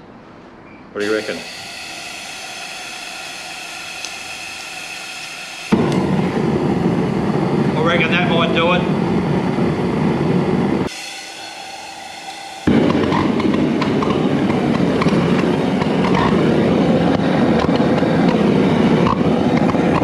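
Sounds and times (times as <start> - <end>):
gas burner torch roaring: 1.0 - 20.0.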